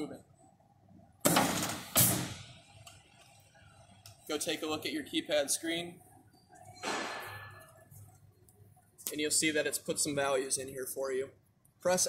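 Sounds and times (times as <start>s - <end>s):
punch press hissing bursts: 1.9s - 2.4s.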